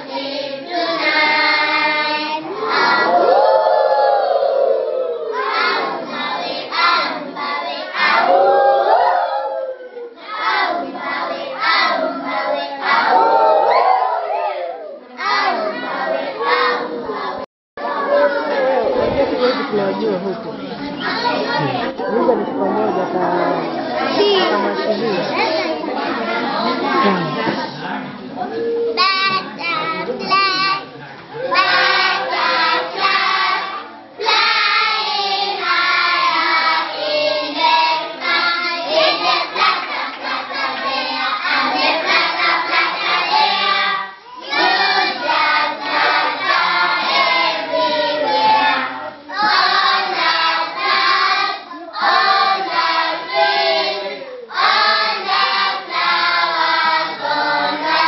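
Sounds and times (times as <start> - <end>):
children singing together: 0.0 - 58.0.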